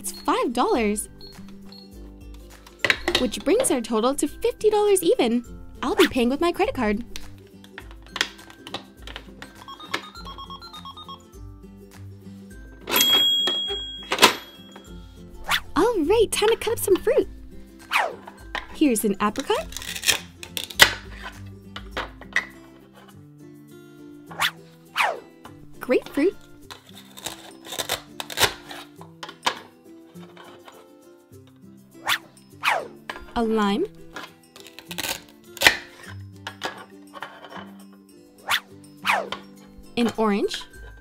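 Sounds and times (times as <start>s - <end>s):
background music: 0.0s - 41.0s
toy cash register electronic ring: 9.4s - 11.2s, 12.9s - 14.9s
velcro tearing: 19.6s - 21.0s, 26.8s - 29.0s, 34.5s - 35.9s.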